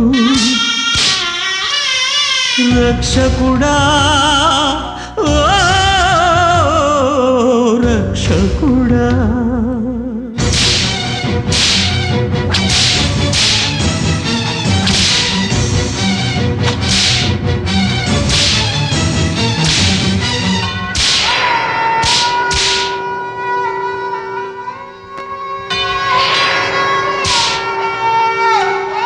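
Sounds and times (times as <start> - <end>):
instrumental film music: 0.0 - 29.0
whip lashes: 10.4 - 15.6, 16.7 - 17.4, 18.2 - 23.1, 27.2 - 27.9
long held melodic note: 21.8 - 29.0.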